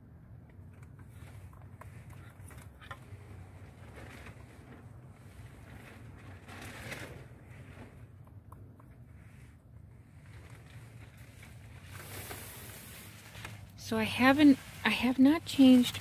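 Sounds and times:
rustling: 0:00.6 - 0:08.2, 0:09.1 - 0:16.0.

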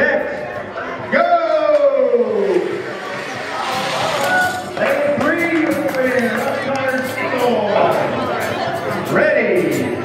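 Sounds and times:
crowd chatter in a large room: 0:00.0 - 0:10.0.

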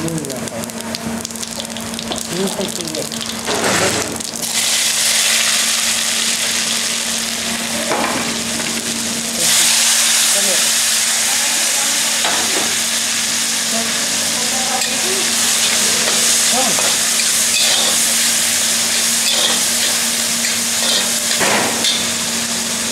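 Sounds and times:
spices sizzling in hot fat: 0:00.0 - 0:22.9.

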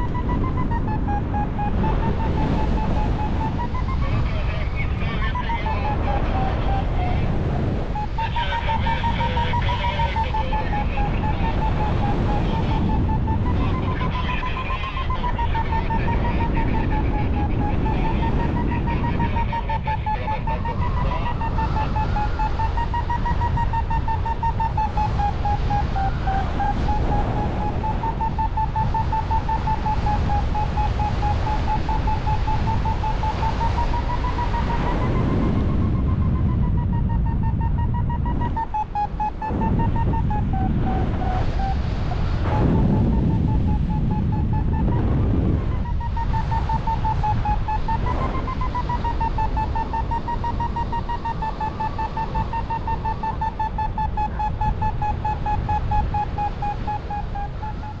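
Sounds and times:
variometer beeping quickly: 0:00.0 - 0:58.0
wind noise on microphone: 0:00.0 - 0:58.0.

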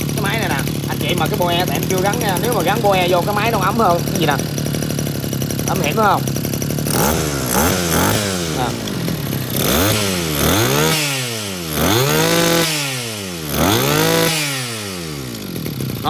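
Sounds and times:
two-stroke brush cutter engine revving: 0:00.0 - 0:16.0.

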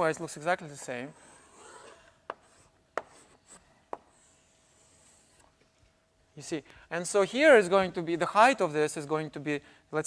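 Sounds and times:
light chalk scraping: 0:00.0 - 0:06.0
chalk scratching on blackboard: 0:00.7 - 0:05.5
chalk tapping on blackboard: 0:02.3 - 0:05.5.

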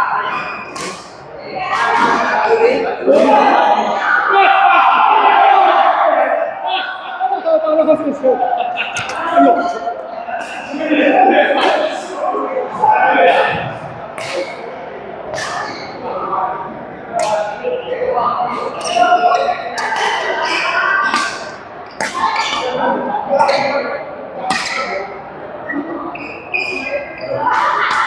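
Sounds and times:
players' voices: 0:00.0 - 0:28.0.

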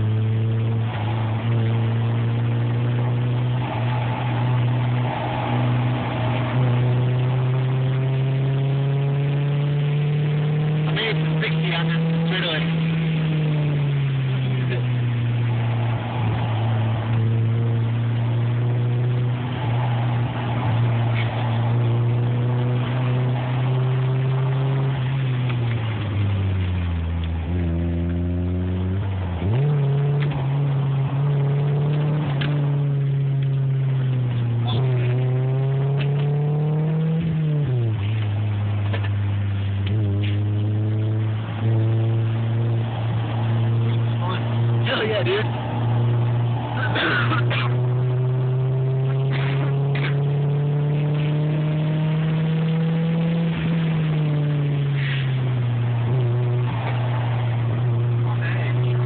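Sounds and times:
car engine while driving: 0:00.0 - 0:59.0.

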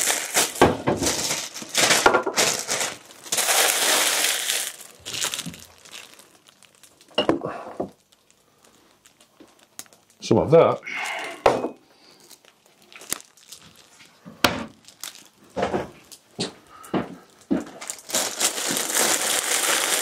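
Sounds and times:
packaging crinkling and rustling: 0:00.0 - 0:10.3, 0:12.0 - 0:16.6, 0:17.2 - 0:20.0.

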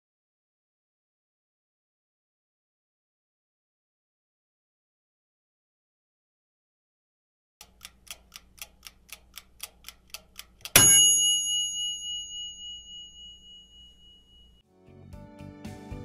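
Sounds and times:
clock ticking: 0:07.6 - 0:13.5
bright bell ding: 0:10.8 - 0:14.6.

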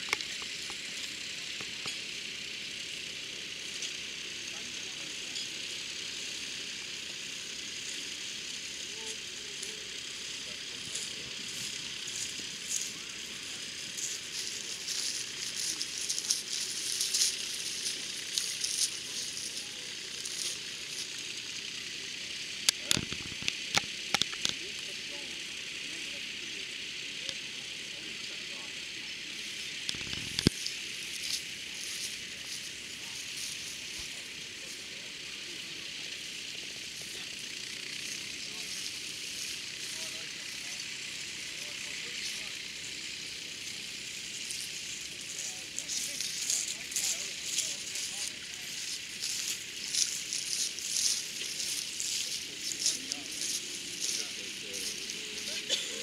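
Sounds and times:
crowd chatter: 0:00.0 - 0:56.0
sharp clicks: 0:22.6 - 0:24.6.

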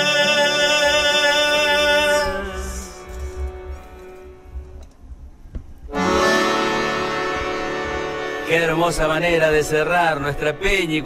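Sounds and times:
accordion long held chord: 0:00.0 - 0:04.8, 0:05.9 - 0:11.0.

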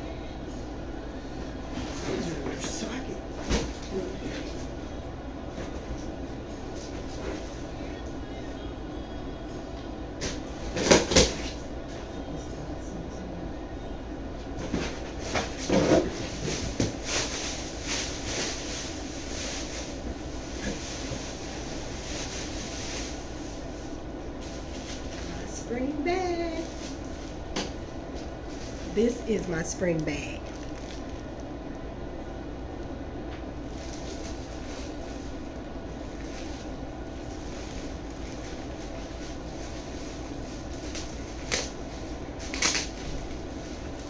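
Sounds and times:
low background hum: 0:00.0 - 0:44.0
plastic rustling and crinkling: 0:14.7 - 0:25.5, 0:26.5 - 0:27.5, 0:30.4 - 0:31.5, 0:33.6 - 0:44.0.

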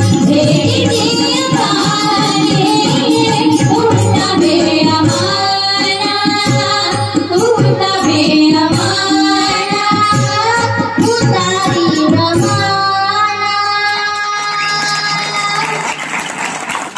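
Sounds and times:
girls singing devotional song: 0:00.0 - 0:15.2
harmonium: 0:00.0 - 0:15.2
tabla strokes: 0:00.0 - 0:15.2.

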